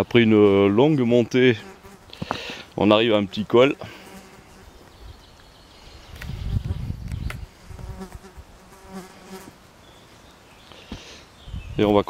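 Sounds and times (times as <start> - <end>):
insect buzzing: 1.5 - 5.0, 5.6 - 9.7
low rumble on microphone: 6.1 - 8.0.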